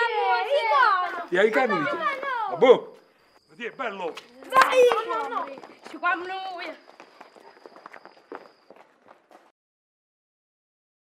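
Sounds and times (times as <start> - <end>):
children's footsteps on cobblestones: 3.8 - 9.5.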